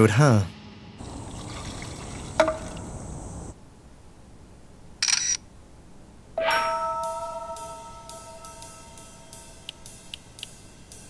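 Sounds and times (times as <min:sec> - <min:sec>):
faint hiss: 0:00.0 - 0:06.3
camera shutter click: 0:05.0 - 0:05.4
bell-like chime: 0:06.4 - 0:09.7
light ticks: 0:09.6 - 0:10.6.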